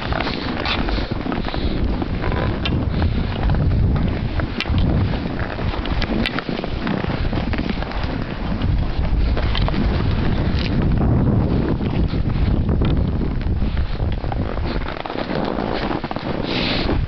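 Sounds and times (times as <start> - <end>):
skis scraping on snow: 0.0 - 17.0
wind rushing over microphone: 0.0 - 17.0.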